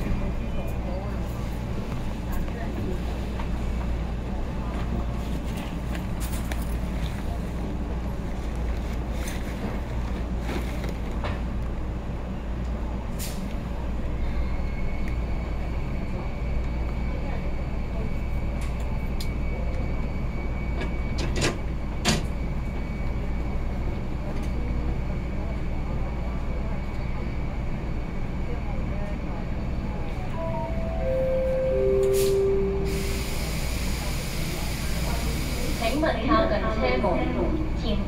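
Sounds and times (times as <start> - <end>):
train equipment low hum: 0.0 - 38.0.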